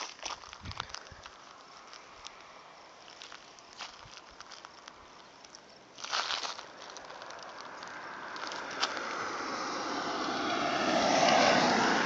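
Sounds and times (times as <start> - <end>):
motor vehicle passing: 6.9 - 12.0.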